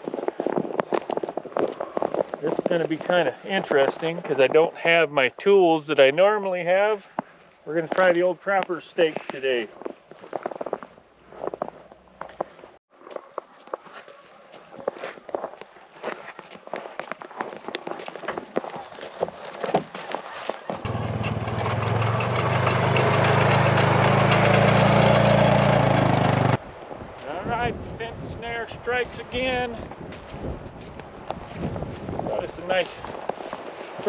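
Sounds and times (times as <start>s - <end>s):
footsteps in snow: 0.0s - 3.3s, 9.0s - 20.9s, 29.9s - 34.0s
utility vehicle engine running: 20.7s - 26.6s
wind noise: 26.6s - 34.0s.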